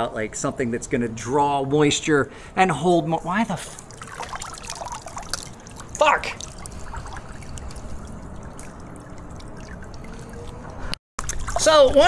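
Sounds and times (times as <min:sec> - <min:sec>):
pool water splashing: 0:03.4 - 0:12.0
water running off arm: 0:03.6 - 0:12.0.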